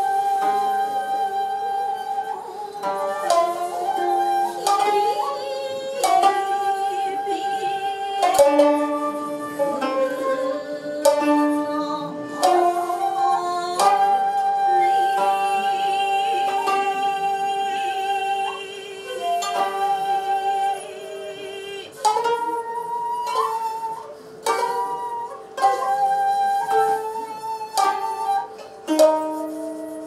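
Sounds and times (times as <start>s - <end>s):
held flute tones: 0.0s - 30.0s
plucked string notes: 0.0s - 30.0s.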